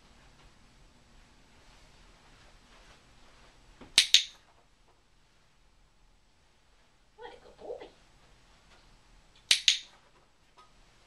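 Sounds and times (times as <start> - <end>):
box clicker clicking: 9.5 - 9.9.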